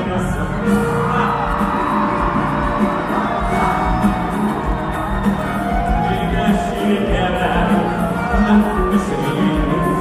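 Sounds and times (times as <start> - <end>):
live band music: 0.0 - 10.0
audience cheering and whooping: 0.6 - 10.0.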